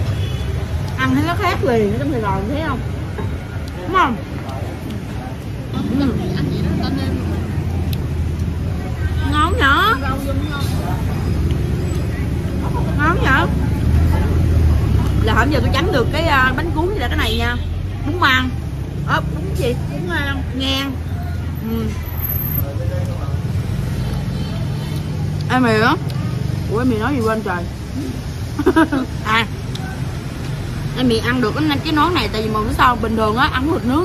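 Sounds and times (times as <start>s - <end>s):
road traffic rumble: 0.0s - 34.0s
faint voices: 17.9s - 28.4s.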